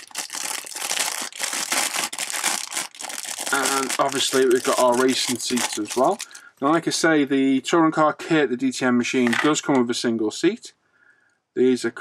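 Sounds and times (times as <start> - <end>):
plastic bag crinkling: 0.0 - 6.6.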